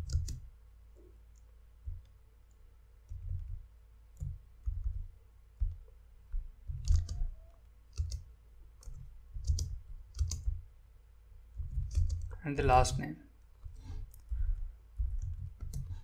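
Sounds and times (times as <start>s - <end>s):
computer keyboard keystrokes: 0.0s - 0.5s, 1.3s - 3.6s, 4.2s - 10.6s, 11.6s - 12.4s, 13.6s - 16.0s.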